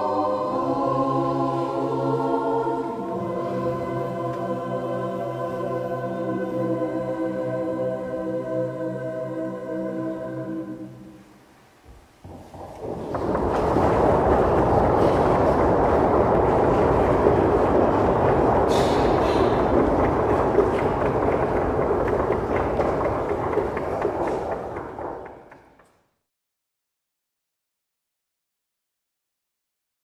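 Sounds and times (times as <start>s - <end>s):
audience applauding: 12.3s - 25.8s.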